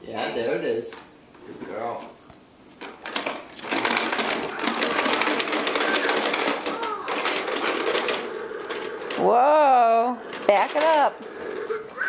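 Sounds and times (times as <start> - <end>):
plastic toy lawn mower clattering: 2.8 - 12.0.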